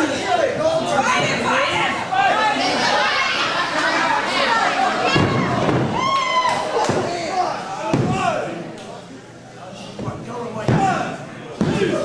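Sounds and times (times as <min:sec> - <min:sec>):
people shouting: 0:04.0 - 0:08.4.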